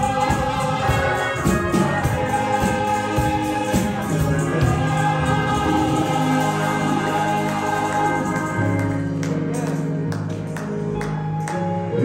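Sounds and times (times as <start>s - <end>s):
steady beat: 0.0s - 10.0s
gospel vocal group singing: 0.0s - 10.1s.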